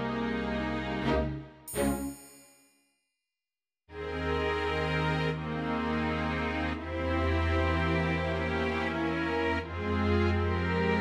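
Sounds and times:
music: 0:00.0 - 0:02.6, 0:03.9 - 0:11.0
bell-like ringing hit: 0:01.7 - 0:02.8.

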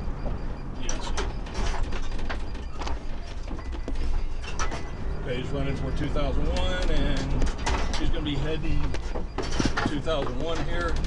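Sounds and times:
road and engine rumble: 0:00.0 - 0:11.0
car cabin rattling and creaking: 0:00.1 - 0:11.0.

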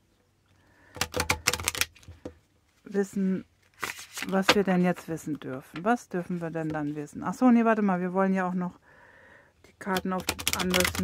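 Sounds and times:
cards being shuffled: 0:01.0 - 0:02.3, 0:03.6 - 0:05.1.

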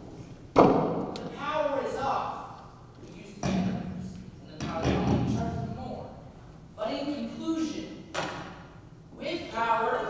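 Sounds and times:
man speaking: 0:01.2 - 0:08.1.

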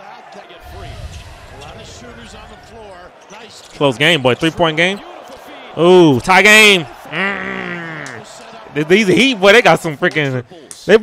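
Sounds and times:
arena crowd noise: 0:00.0 - 0:11.0
low rumble: 0:00.6 - 0:03.2.

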